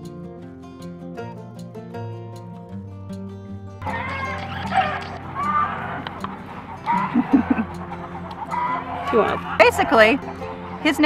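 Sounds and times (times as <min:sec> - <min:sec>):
acoustic guitar music: 0:00.0 - 0:11.0
chickens clucking: 0:03.8 - 0:11.0.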